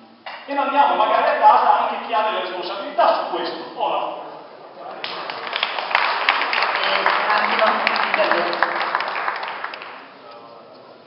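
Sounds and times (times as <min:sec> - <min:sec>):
audience applauding: 0:04.8 - 0:10.2.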